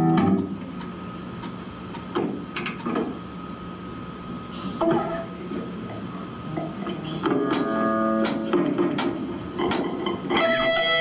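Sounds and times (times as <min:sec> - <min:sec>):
plucked electric guitar notes: 0:00.0 - 0:00.6, 0:07.4 - 0:08.5, 0:10.3 - 0:11.0
amplifier hum: 0:00.0 - 0:11.0.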